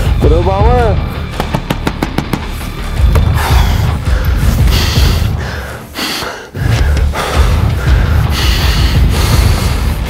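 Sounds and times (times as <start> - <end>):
music with deep bass: 0.0 - 10.0
man breathing heavily: 2.5 - 10.0.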